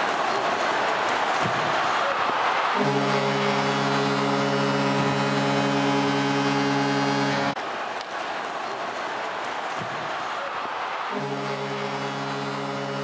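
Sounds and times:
crowd noise: 0.0s - 13.0s
arena horn blast: 2.6s - 7.6s, 11.1s - 13.0s.

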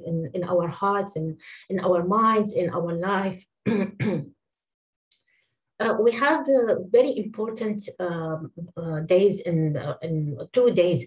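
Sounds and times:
woman speaking: 0.0s - 3.4s, 5.8s - 11.0s.

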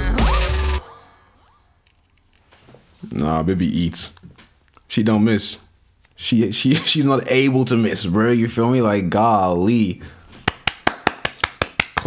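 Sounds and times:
person clapping hands: 10.4s - 12.0s.

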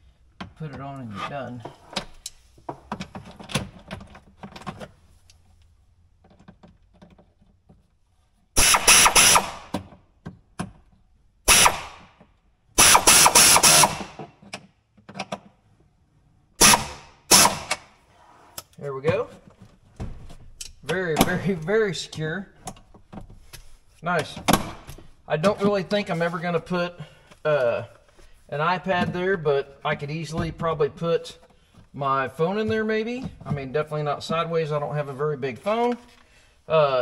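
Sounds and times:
power ratchet running: 12.8s - 14.1s, 16.6s - 17.7s.

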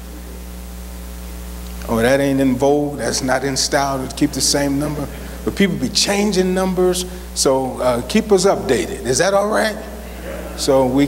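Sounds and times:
electrical mains hum: 0.0s - 11.0s.

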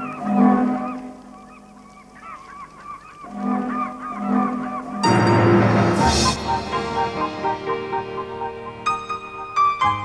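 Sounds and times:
honk-like bird calls: 0.0s - 6.6s.

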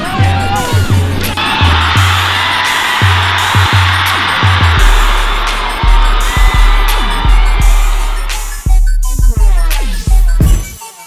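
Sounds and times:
music with deep bass line: 0.0s - 10.8s.

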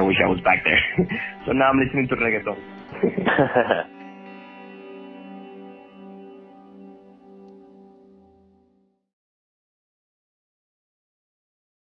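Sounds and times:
faint guitar music: 0.0s - 9.0s.

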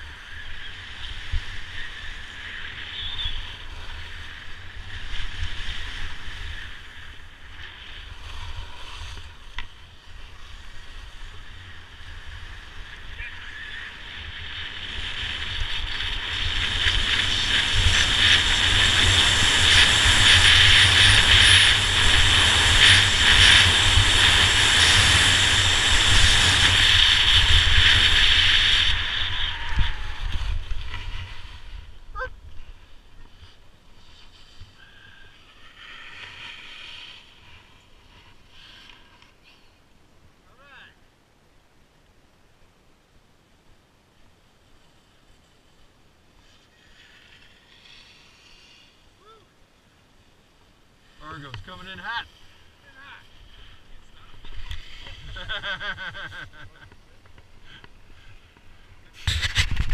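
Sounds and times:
skis scraping over snow: 0.0s - 39.8s, 44.6s - 49.1s, 49.8s - 59.9s.

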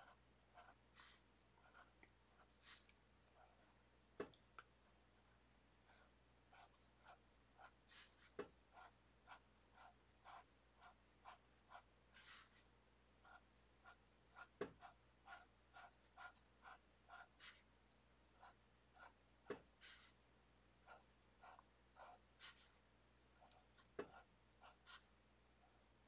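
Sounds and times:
pen scratching on paper: 0.0s - 3.6s, 5.9s - 12.6s, 13.2s - 17.7s, 18.4s - 20.2s, 20.8s - 22.8s, 23.4s - 25.1s.

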